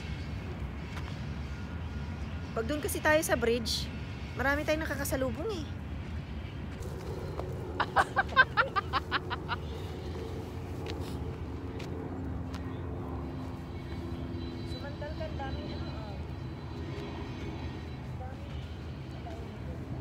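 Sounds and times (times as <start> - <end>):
distant engine rumble: 0.0 - 20.0.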